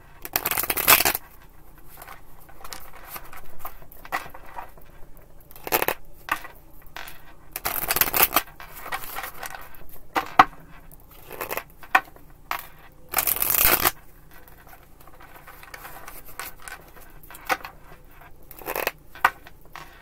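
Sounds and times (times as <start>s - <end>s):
cards riffling: 0.2s - 1.3s, 12.6s - 17.5s.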